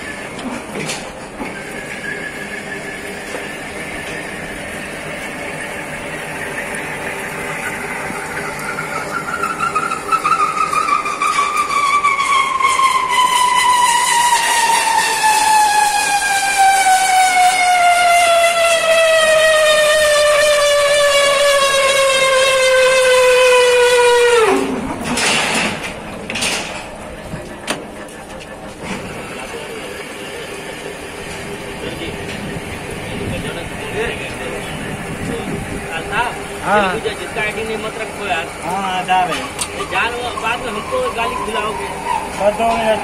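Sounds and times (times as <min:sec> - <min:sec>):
thread cutting machine squeal: 0:01.4 - 0:24.6, 0:31.8 - 0:43.0.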